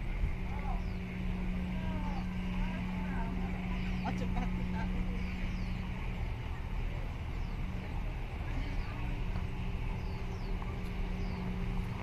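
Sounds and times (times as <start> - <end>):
distant voices: 0.0 - 12.0
low engine hum: 0.0 - 12.0.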